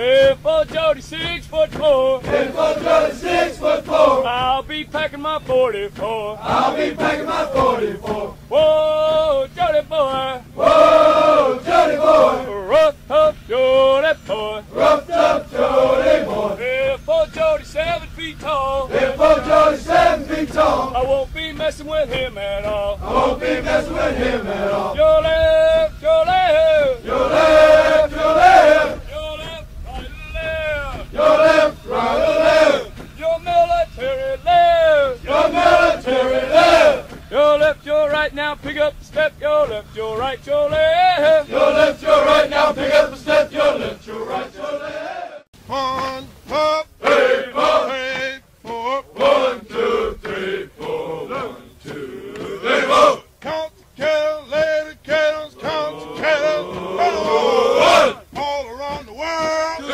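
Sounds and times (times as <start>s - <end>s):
men chanting call-and-response: 0.0s - 59.9s.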